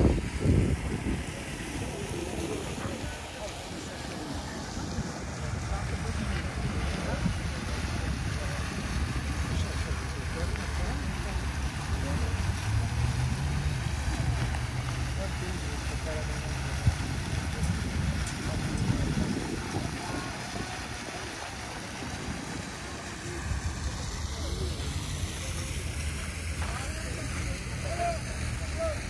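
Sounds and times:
wind rumble on microphone: 0.0 - 3.2, 4.8 - 11.2, 16.5 - 22.8
indistinct voices of passers-by: 0.0 - 29.0.

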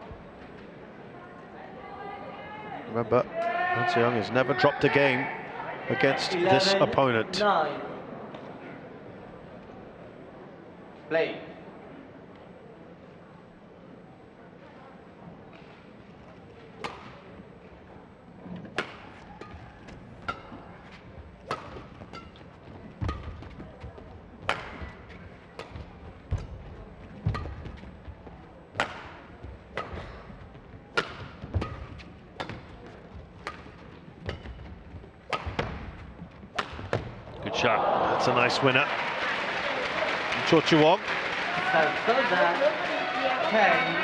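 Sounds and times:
racket striking shuttlecock: 16.8 - 17.2, 18.7 - 19.6, 20.2 - 20.6, 21.4 - 22.4, 23.0 - 23.5, 24.4 - 26.6, 27.2 - 27.8, 28.7 - 30.3, 30.9 - 32.8, 33.4 - 37.1.

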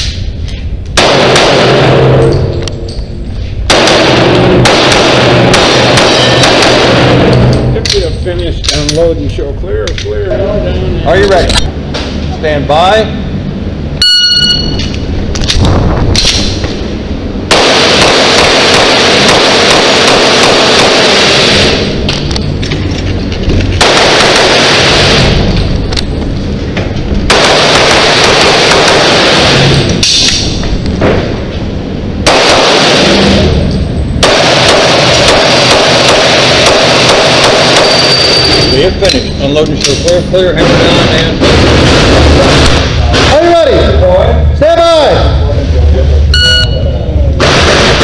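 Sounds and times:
loud indoor pistol fire: 1.0 - 2.8, 3.6 - 7.8, 16.1 - 22.2, 23.7 - 25.9, 27.2 - 38.6, 40.6 - 43.4, 47.4 - 48.0
shot timer beep: 14.0 - 14.8, 46.3 - 47.0.

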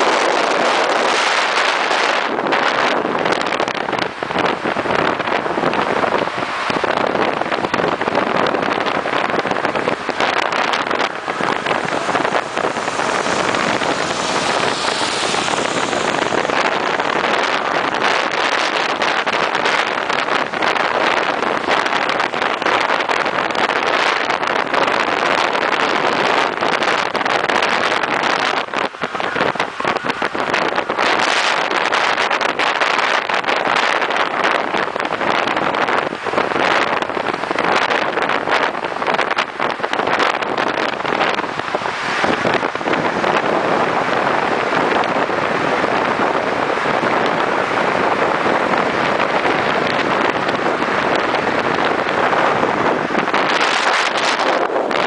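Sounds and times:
car running noise: 0.0 - 55.0
wind and road noise at car window: 0.0 - 55.0.

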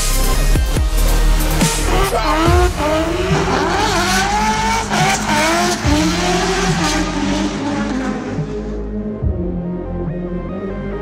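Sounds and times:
steady music track: 0.0 - 11.0
car engine at high revs: 1.1 - 9.2.

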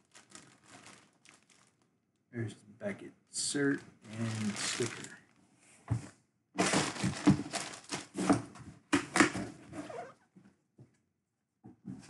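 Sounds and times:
packaging rustling and crinkling: 0.0 - 1.9, 3.6 - 5.4, 6.6 - 8.6.

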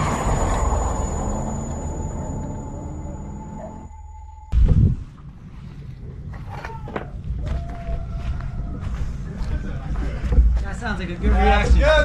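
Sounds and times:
wavering tone: 0.0 - 4.9
steady low rumble: 0.0 - 6.4.

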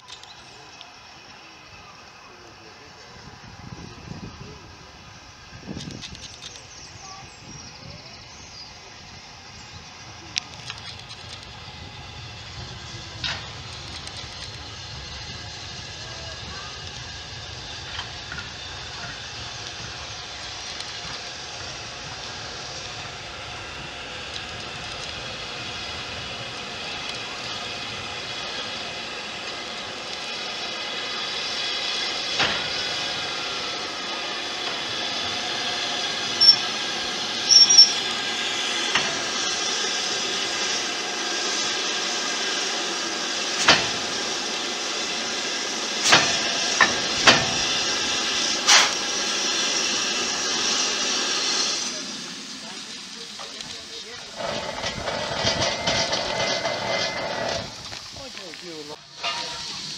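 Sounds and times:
steam hissing: 0.0 - 59.9
sharp metallic clanks: 59.2 - 59.8.

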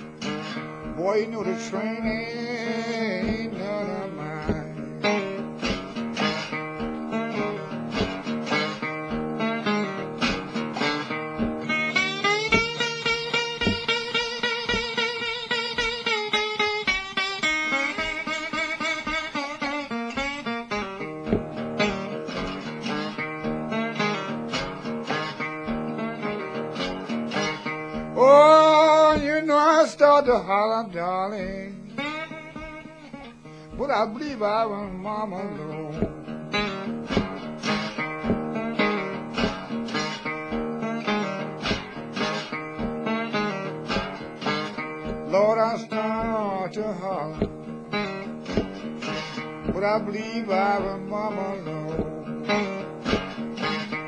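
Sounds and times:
slide guitar playing blues: 0.0 - 54.0
steady low beat: 0.1 - 2.5, 3.1 - 8.5, 10.2 - 15.1, 21.2 - 22.7, 31.3 - 33.0, 33.7 - 39.8, 43.9 - 53.6
person singing: 0.5 - 6.4, 28.1 - 32.2, 33.7 - 36.3, 45.1 - 47.6, 48.5 - 52.8.

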